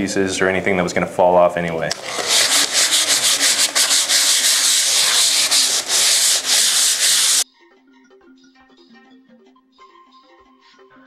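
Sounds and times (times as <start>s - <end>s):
sandpaper rubbing on plaster: 2.0s - 7.4s.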